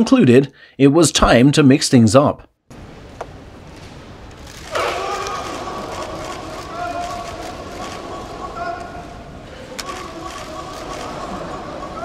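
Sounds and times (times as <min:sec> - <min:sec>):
sharp crack: 0:03.8 - 0:08.0
crowd cheering and shouting: 0:04.6 - 0:09.2, 0:09.8 - 0:12.0.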